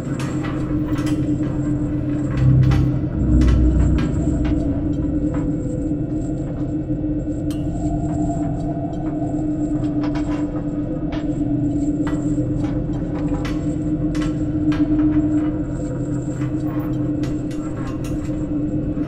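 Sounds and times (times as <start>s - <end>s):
steady low drone: 0.0s - 13.4s
deep rumble: 1.0s - 9.2s.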